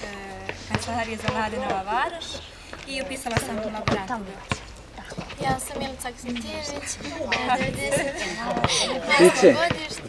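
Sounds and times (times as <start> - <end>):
young people talking and laughing: 0.0 - 10.0.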